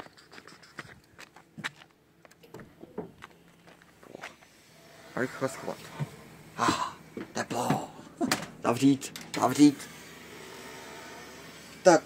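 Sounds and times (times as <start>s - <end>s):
footsteps at walking pace: 0.0s - 4.6s.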